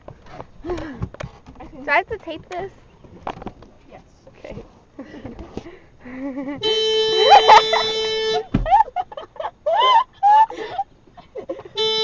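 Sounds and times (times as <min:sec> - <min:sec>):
golf cart horn beeping: 0:06.6 - 0:08.6, 0:11.7 - 0:12.0
low thump: 0:08.5 - 0:08.8
girls laughing and shrieking: 0:08.6 - 0:10.9.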